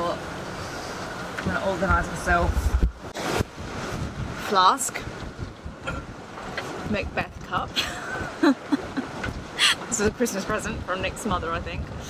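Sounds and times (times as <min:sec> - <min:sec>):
woman laughing: 0:07.7 - 0:10.0.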